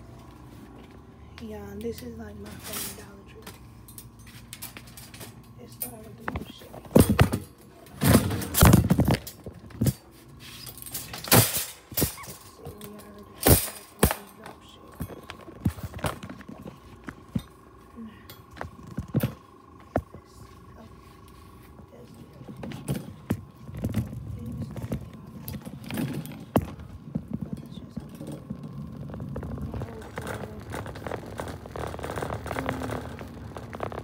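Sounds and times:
shopping carts clattering: 0:01.8 - 0:17.0, 0:22.0 - 0:34.0.

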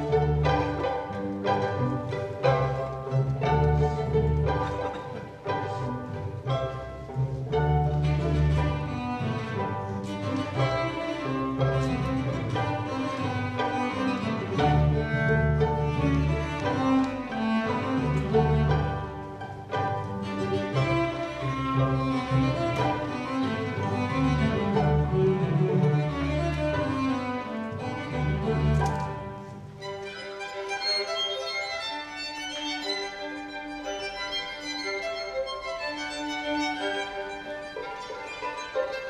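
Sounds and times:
string quintet playing: 0:00.0 - 0:39.0.

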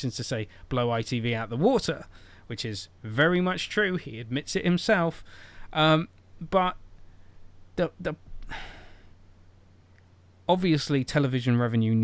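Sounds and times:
man sighing: 0:08.4 - 0:09.2.

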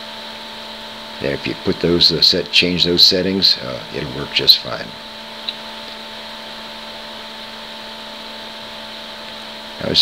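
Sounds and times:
steady tonal hum: 0:00.0 - 0:10.0
man speaking: 0:01.2 - 0:05.0, 0:09.8 - 0:10.0.

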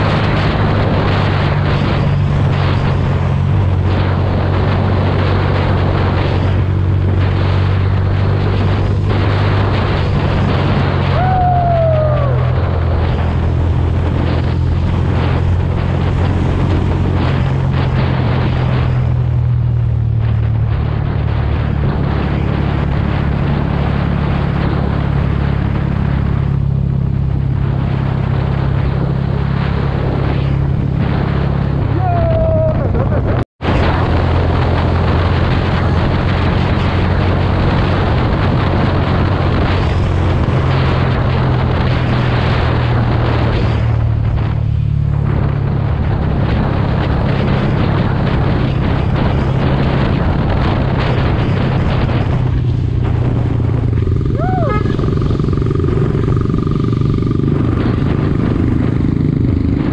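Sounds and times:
motorcycle engine running: 0:00.0 - 0:59.9
wind rush on microphone: 0:00.0 - 0:59.9.

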